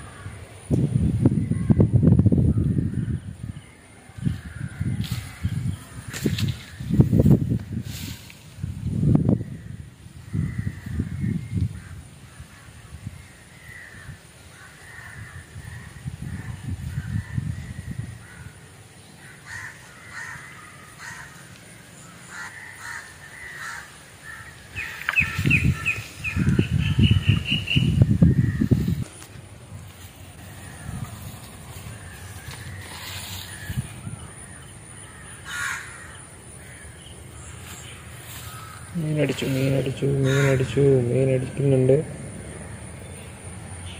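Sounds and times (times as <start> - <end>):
faint outdoor background: 0.0 - 43.9
low rumble of wind: 0.0 - 43.9
crows cawing: 9.5 - 17.5, 18.2 - 18.6, 19.2 - 29.2, 30.4 - 41.1.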